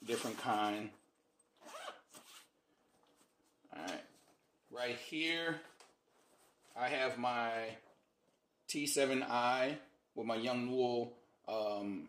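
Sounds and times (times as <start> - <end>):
zipper pulled: 1.6 - 2.5.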